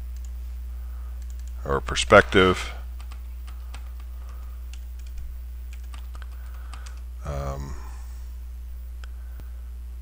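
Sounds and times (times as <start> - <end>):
low electrical hum: 0.0 - 10.0
computer keyboard typing: 1.2 - 1.6, 2.8 - 7.1.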